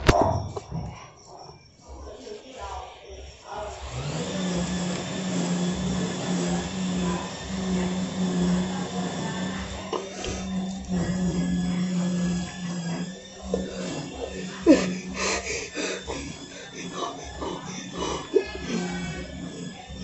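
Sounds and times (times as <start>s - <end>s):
steady motor-like hum: 3.2s - 20.0s.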